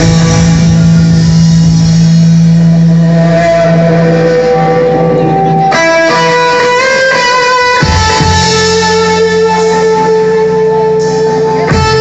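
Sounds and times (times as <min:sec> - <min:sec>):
distorted electric guitar note: 0:00.0 - 0:12.0.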